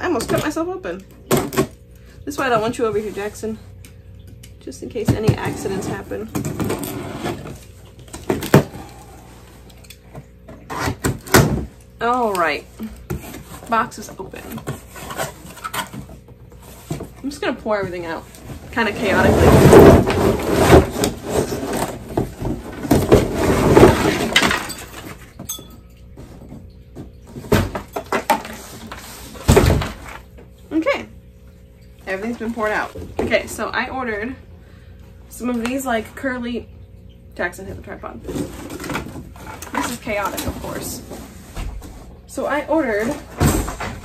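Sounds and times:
cardboard and tape ripping: 19.1s - 24.5s.

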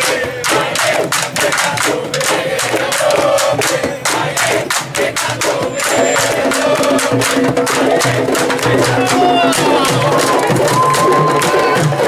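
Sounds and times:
hand drums playing dense rhythm: 0.0s - 12.0s
people shouting: 5.5s - 12.0s.

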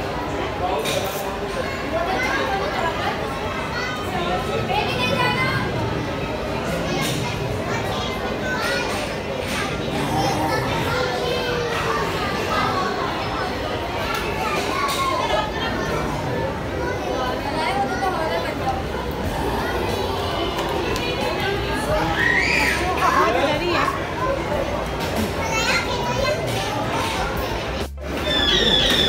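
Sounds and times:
busy indoor play area din: 0.0s - 29.0s
young children's voices: 1.6s - 29.0s
child's high-pitched voice: 25.4s - 27.6s.

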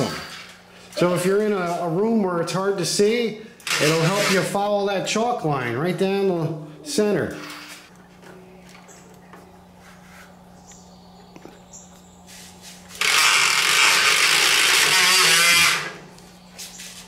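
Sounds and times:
toy circular saw whirring: 12.9s - 16.0s.

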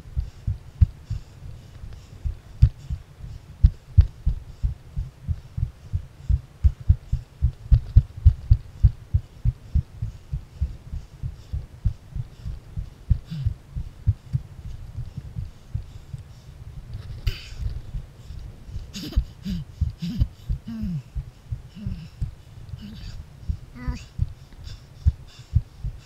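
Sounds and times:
muffled low thumps of footsteps: 0.0s - 26.0s.

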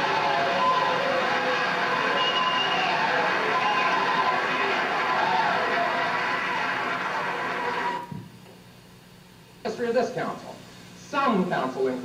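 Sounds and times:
crowd or room sound: 0.0s - 12.0s
faint steady hum: 0.0s - 12.0s.

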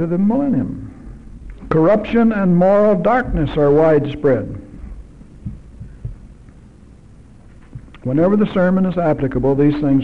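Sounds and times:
low steady hum: 0.0s - 10.0s
soft low thumps: 4.6s - 6.5s.

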